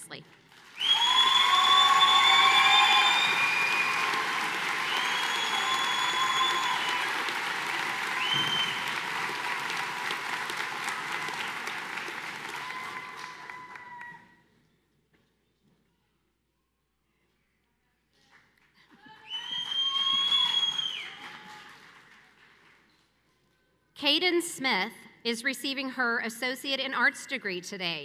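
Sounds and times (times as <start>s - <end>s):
audience applause: 0.5s - 14.3s, 19.0s - 22.8s
high cheers: 0.7s - 14.4s, 19.0s - 22.0s.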